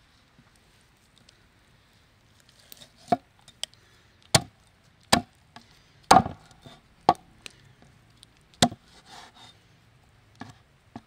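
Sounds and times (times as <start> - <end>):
cleaver chopping on wooden board: 6.1 - 6.4.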